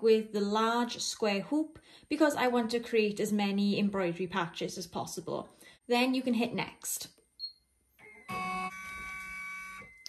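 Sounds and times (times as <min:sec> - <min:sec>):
embroidery machine motor whine: 0:08.0 - 0:10.0.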